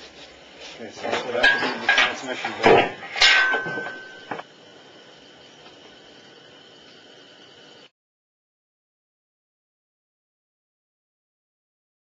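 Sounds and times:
faint steady hiss: 0:00.0 - 0:07.9
sharp metallic clank ringing: 0:01.1 - 0:04.4.

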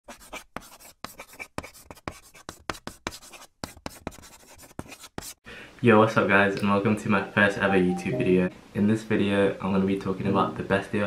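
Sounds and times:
person saying yo: 0:07.2 - 0:08.5.

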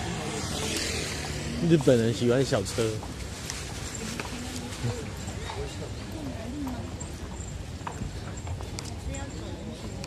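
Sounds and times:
footsteps on pavement: 0:00.0 - 0:10.0
low hum of traffic: 0:00.0 - 0:10.0
voices of passers-by: 0:00.0 - 0:10.0.

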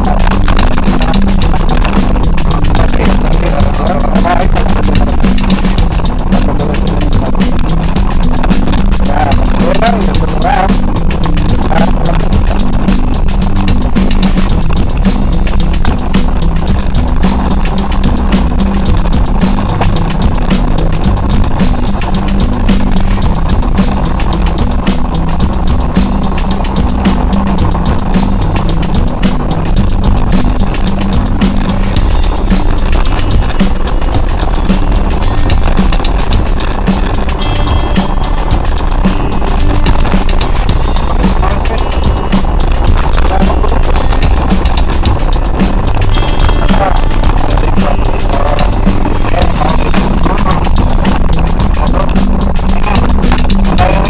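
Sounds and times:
music playing: 0:00.0 - 0:54.0
vehicle engine rumble: 0:00.0 - 0:54.0.

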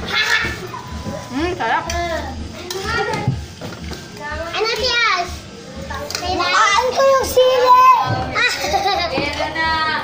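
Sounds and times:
children talking and calling out: 0:00.0 - 0:03.5, 0:04.1 - 0:10.0
high-pitched child's voice: 0:06.2 - 0:08.6.

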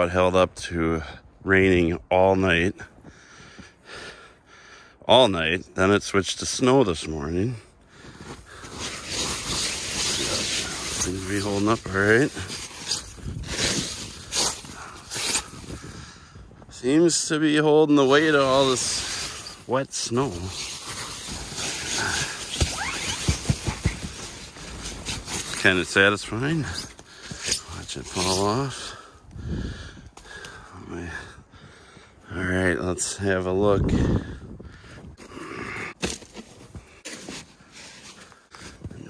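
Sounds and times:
glove swishing snow off tent: 0:08.1 - 0:15.8, 0:18.0 - 0:29.0.

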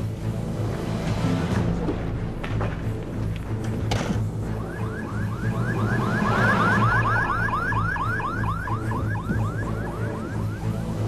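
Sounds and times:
background music: 0:00.0 - 0:11.0
ambulance siren yelping: 0:04.4 - 0:11.0.

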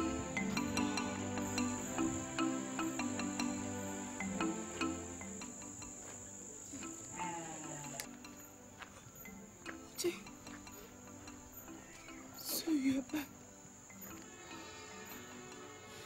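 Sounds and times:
crickets chirring: 0:00.0 - 0:16.0
soft background music: 0:00.0 - 0:16.0.

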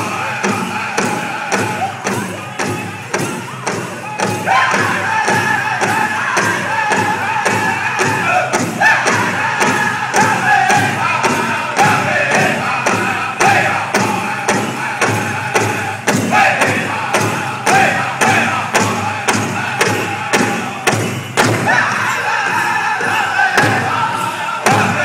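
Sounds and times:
high-pitched group singing: 0:00.0 - 0:25.0
large drum beating: 0:00.0 - 0:25.0.

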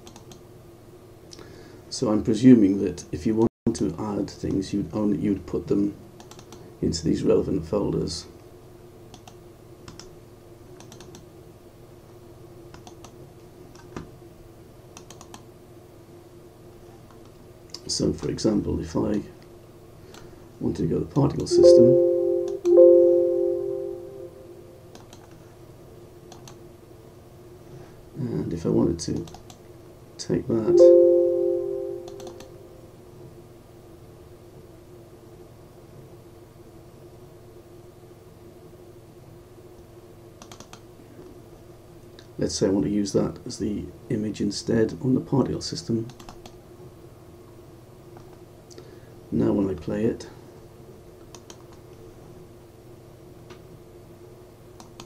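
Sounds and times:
computer mouse clicks: 0:00.0 - 0:00.4, 0:06.2 - 0:06.6, 0:09.1 - 0:10.1, 0:10.8 - 0:11.3, 0:12.7 - 0:14.1, 0:15.0 - 0:15.4, 0:24.9 - 0:25.4, 0:26.3 - 0:26.6, 0:29.1 - 0:29.6, 0:32.1 - 0:32.5, 0:40.4 - 0:40.8, 0:46.1 - 0:46.6, 0:51.2 - 0:51.8, 0:54.8 - 0:55.0
faint hum: 0:00.0 - 0:55.0
steady low hum: 0:15.8 - 0:25.0, 0:30.2 - 0:33.2.

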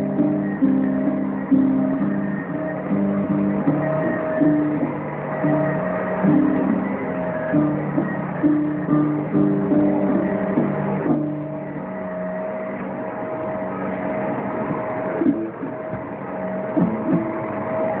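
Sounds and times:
acoustic guitar plucked notes: 0:00.0 - 0:18.0
faint hum: 0:00.0 - 0:18.0.

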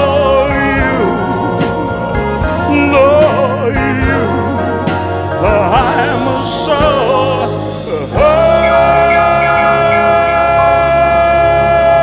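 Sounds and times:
man singing a long note: 0:00.0 - 0:01.7, 0:05.4 - 0:12.0
sustained backing chord: 0:00.0 - 0:12.0.

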